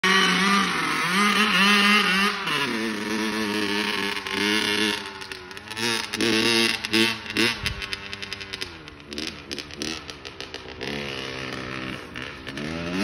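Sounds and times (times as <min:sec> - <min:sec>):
dirt bike engine revving: 0:00.0 - 0:13.0.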